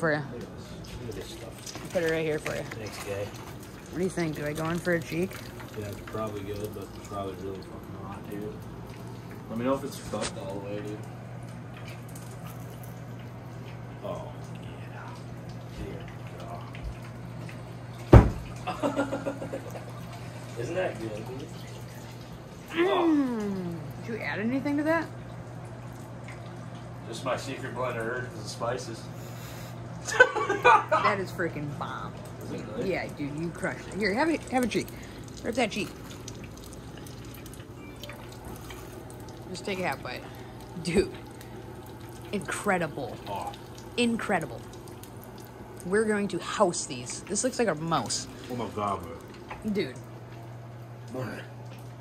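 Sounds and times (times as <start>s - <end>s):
oil sizzling while deep-frying: 0.0s - 52.0s.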